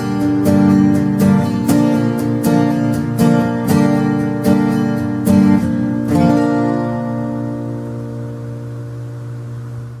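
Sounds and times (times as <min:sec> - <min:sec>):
acoustic guitar chord ringing: 0:00.0 - 0:10.0.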